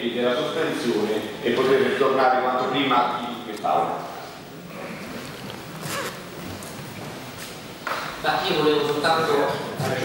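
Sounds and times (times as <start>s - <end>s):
large room background noise: 0.0s - 10.0s.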